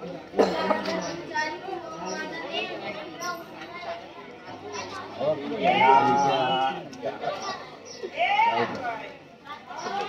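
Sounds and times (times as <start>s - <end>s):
children's voices: 0.0s - 10.0s
people talking: 0.0s - 10.0s.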